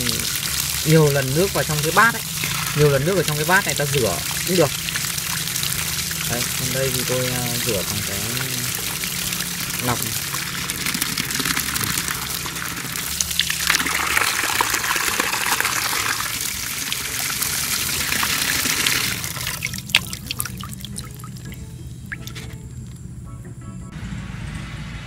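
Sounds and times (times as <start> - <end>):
water pouring through a strainer: 0.0 - 21.6
water splashing onto concrete: 0.0 - 21.6
water dripping: 0.0 - 23.0.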